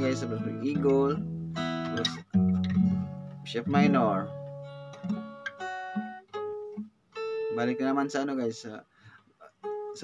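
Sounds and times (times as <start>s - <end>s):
fingerpicked acoustic guitar: 0.0s - 10.0s.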